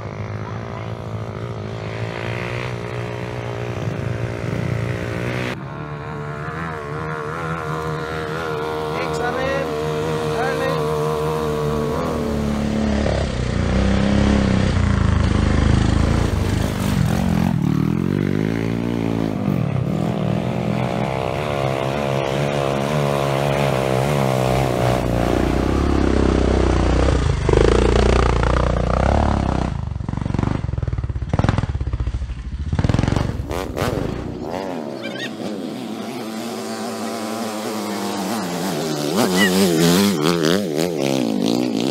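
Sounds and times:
motorcycle engines revving: 0.0 - 41.9.

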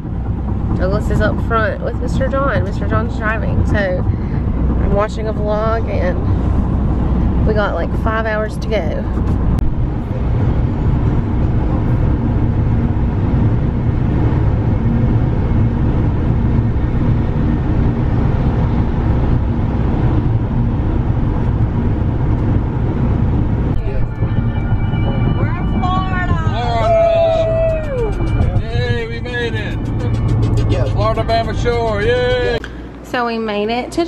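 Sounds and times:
road and engine noise: 0.0 - 34.0.

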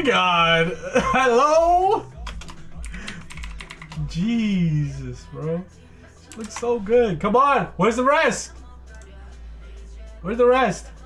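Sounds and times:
computer keyboard typing: 2.2 - 4.2, 6.3 - 6.7.

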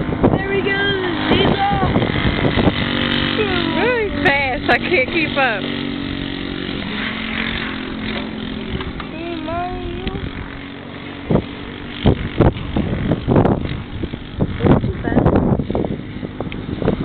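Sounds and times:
distant go-kart engine: 0.0 - 17.0
wind buffeting microphone: 0.0 - 17.0.

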